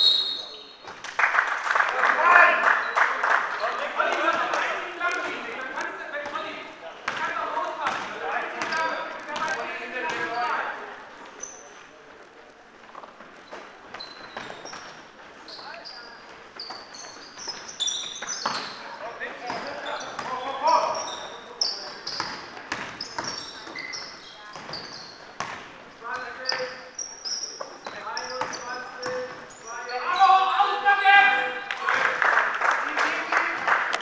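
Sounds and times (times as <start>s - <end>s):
sneakers squeaking on court: 5.2s - 12.1s, 12.7s - 31.1s
basketball bouncing: 7.0s - 10.4s, 19.5s - 20.4s, 22.1s - 23.8s, 24.5s - 25.7s
players calling out: 26.2s - 32.2s.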